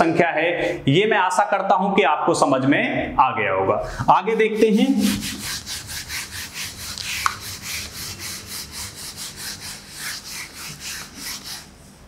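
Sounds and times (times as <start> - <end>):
duster rubbing on whiteboard: 4.2 - 12.0.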